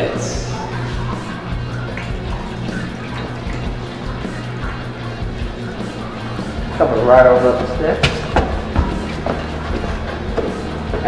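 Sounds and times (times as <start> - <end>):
background music with steady bass: 0.0 - 11.0
footsteps climbing steps: 6.6 - 11.0.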